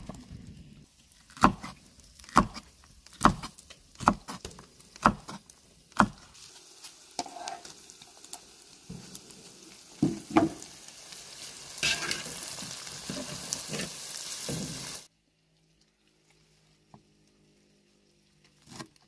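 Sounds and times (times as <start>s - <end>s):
food sizzling in a wok: 3.4s - 15.1s.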